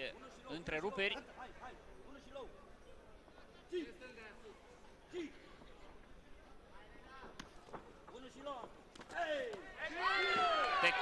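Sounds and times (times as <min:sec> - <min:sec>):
spectators shouting: 0:09.7 - 0:11.0.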